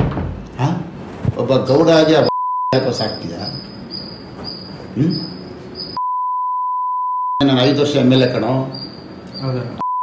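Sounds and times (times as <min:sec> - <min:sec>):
censor bleep tone: 0:02.2 - 0:02.8, 0:05.2 - 0:07.4, 0:09.8 - 0:10.0.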